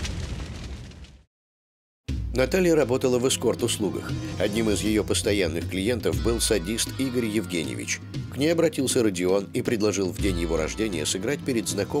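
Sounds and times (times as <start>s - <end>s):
rumbling explosion burst: 0.0s - 1.3s.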